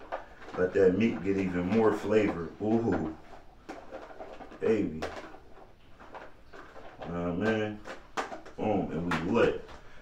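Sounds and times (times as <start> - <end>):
spoon scraping in plastic container: 0.0 - 10.0.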